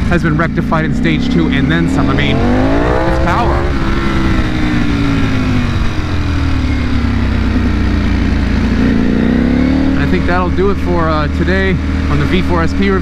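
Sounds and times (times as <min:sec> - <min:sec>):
motorcycle engine while riding: 0:00.0 - 0:13.0.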